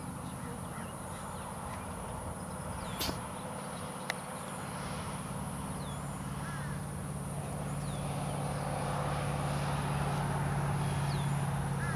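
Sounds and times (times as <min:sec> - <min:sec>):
low motor hum: 0:00.0 - 0:11.9.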